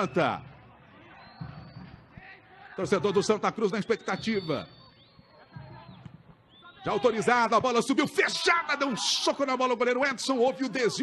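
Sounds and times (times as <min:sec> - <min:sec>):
faint stadium ambience: 0:00.0 - 0:11.0.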